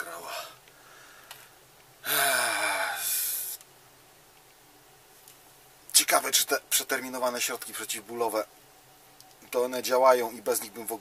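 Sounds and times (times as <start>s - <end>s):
man sighing heavily: 2.0s - 3.6s.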